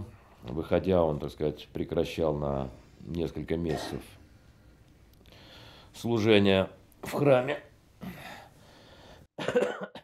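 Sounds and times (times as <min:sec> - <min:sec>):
soft breathy noise: 0:04.0 - 0:06.1, 0:08.0 - 0:09.3
man coughing: 0:09.4 - 0:10.0.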